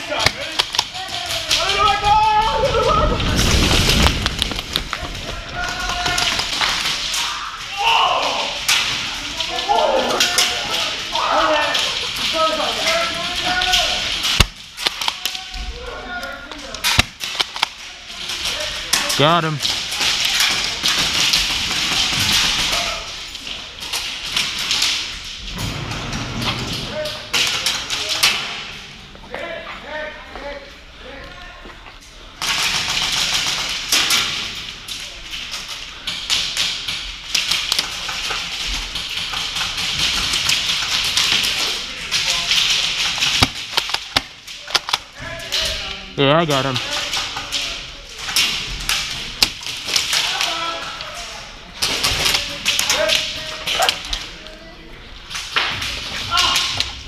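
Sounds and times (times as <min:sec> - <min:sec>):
voices of players: 0:00.0 - 0:25.2, 0:26.6 - 0:36.5, 0:37.6 - 0:57.0.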